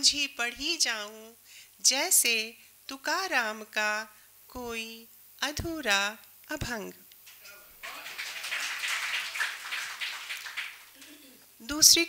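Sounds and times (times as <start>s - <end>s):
audience applauding: 7.8s - 11.2s.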